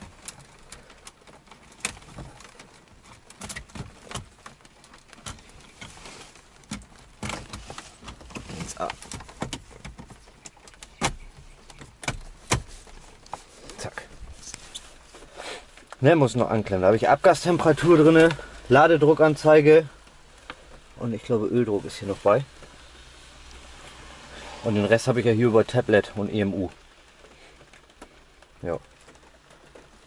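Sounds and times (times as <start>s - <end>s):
plastic clicks and knocks: 6.6s - 13.4s.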